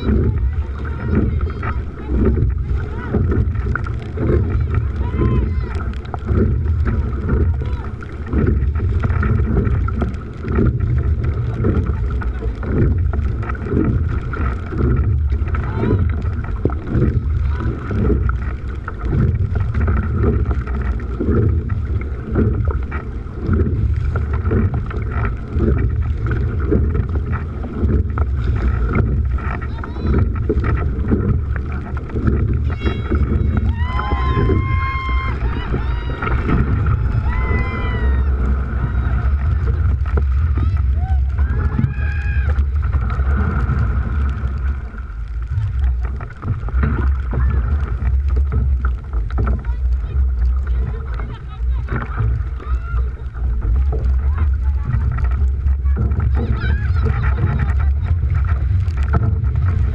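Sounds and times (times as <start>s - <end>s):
water rushing along boat hull: 0.0s - 59.9s
wind buffeting microphone: 0.0s - 59.9s.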